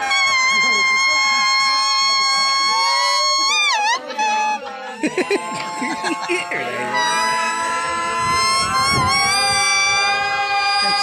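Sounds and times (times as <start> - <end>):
laughter: 0.5 - 6.8.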